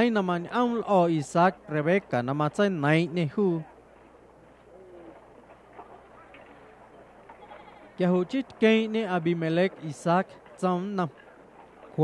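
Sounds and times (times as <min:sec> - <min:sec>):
soft animal calls: 0:04.7 - 0:06.0, 0:07.4 - 0:08.0.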